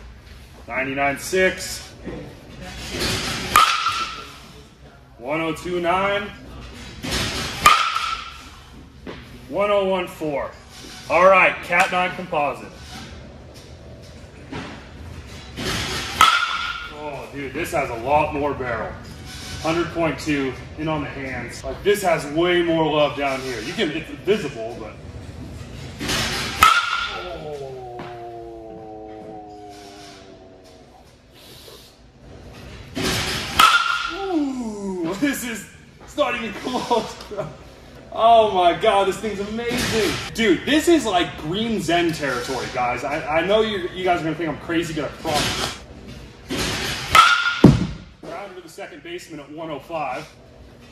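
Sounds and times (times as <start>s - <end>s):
bat cracking ball with ping: 3.5s - 4.3s, 7.6s - 8.4s, 16.2s - 16.9s, 26.5s - 27.2s, 33.5s - 34.2s, 47.1s - 48.1s.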